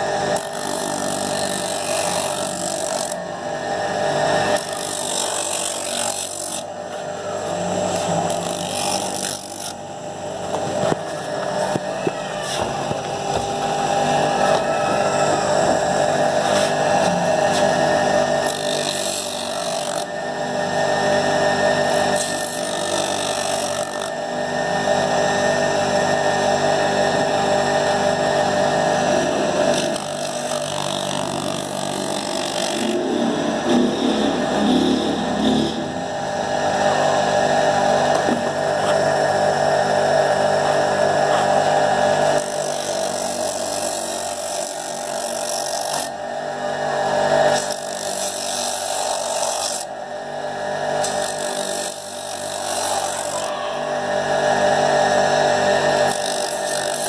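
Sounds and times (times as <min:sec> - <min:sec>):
electric motor hum: 0:00.0 - 0:57.0
rubber grinding on wheel: 0:07.9 - 0:09.8.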